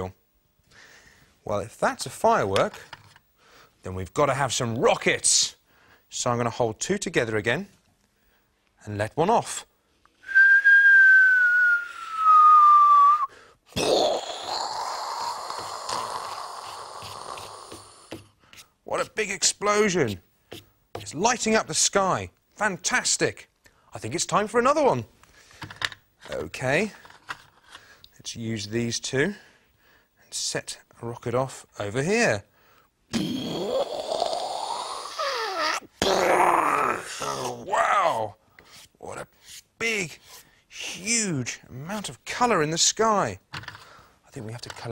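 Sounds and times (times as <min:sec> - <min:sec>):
man whistling falling note: 0:10.2 - 0:13.3
man imitating firework sounds: 0:13.7 - 0:18.1, 0:33.1 - 0:38.2.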